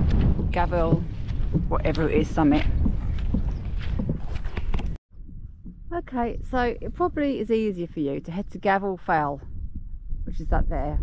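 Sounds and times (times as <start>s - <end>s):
wind on microphone: 0.0s - 11.0s
footsteps through grass: 2.5s - 4.8s.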